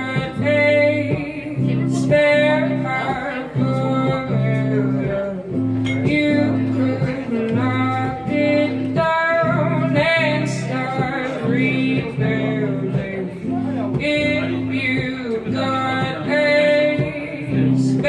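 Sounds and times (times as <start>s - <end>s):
acoustic guitar chords: 0.0s - 18.0s
woman singing: 0.0s - 18.0s.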